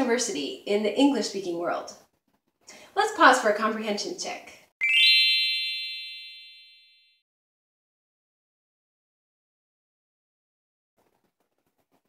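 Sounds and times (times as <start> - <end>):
bright rising chime: 4.8 - 7.2.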